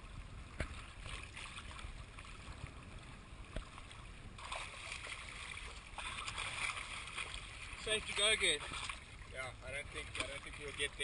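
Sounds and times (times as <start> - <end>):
water slapping against surfboard: 3.5 - 9.1, 9.9 - 11.0.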